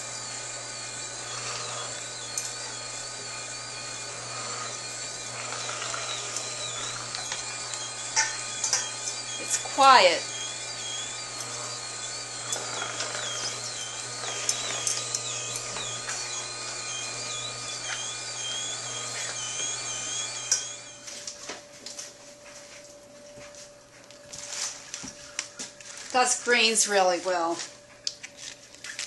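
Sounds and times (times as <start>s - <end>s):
juicer humming: 0.0s - 21.7s
high wavering squeak: 1.5s - 21.2s
leafy greens rustling: 24.3s - 27.6s.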